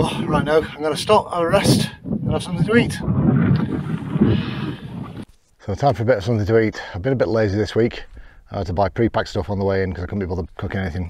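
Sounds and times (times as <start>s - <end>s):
rumbling and rustling on microphone: 0.0s - 5.6s.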